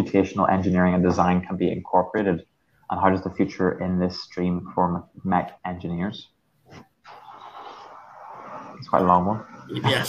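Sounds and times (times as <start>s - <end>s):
man speaking: 0.0s - 6.4s, 8.8s - 10.0s
microphone background hiss: 0.0s - 10.0s.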